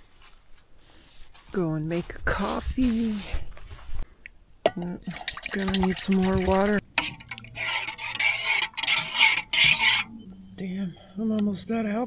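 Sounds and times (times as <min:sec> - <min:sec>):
metal spoon scraping metal pot: 0:04.7 - 0:10.2.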